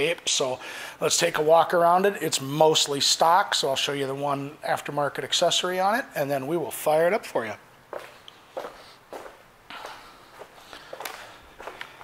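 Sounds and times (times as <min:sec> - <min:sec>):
footsteps on a hard floor: 0:07.9 - 0:12.0.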